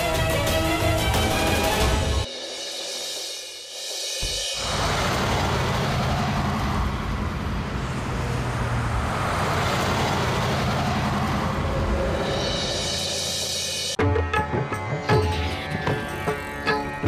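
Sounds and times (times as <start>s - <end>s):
road traffic rumble and tyre hiss: 4.5s - 14.0s.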